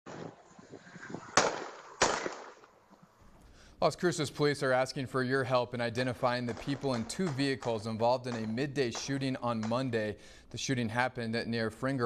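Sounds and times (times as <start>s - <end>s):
gunshots with echo: 1.3s - 2.7s, 6.1s - 10.3s.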